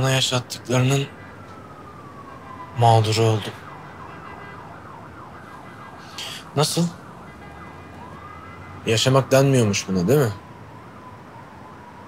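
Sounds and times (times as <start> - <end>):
faint siren wailing: 0.0 - 12.0.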